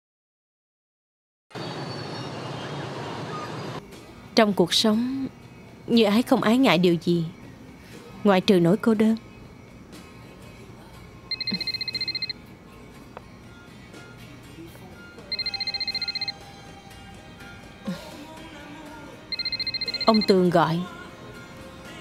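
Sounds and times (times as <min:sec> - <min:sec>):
soft background music: 0:03.8 - 0:22.0
mobile phone electronic ringtone: 0:11.3 - 0:12.4, 0:15.3 - 0:16.5, 0:19.3 - 0:20.5.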